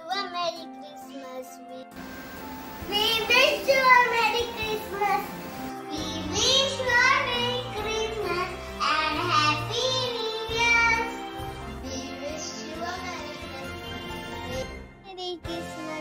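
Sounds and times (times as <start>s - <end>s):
music backing track: 0.0s - 16.0s
child singing: 2.6s - 16.0s.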